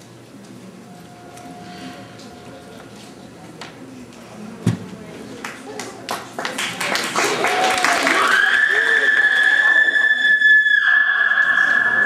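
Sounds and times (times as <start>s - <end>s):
loud high-pitched tone: 0.8s - 2.9s, 8.2s - 12.0s.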